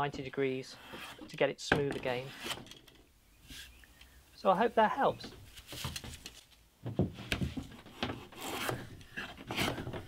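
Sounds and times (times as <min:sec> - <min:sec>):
bench plane cutting wood: 0:08.4 - 0:10.0.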